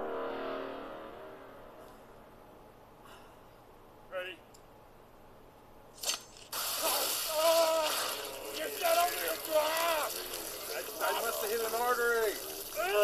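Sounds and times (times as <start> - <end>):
liquid gushing spray: 6.0 - 13.0
person crying out: 6.7 - 8.4.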